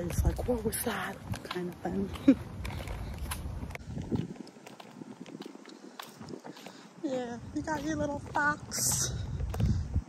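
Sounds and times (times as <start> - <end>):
footsteps on a path: 0.0 - 10.0
stroller wheels rolling: 0.0 - 10.0.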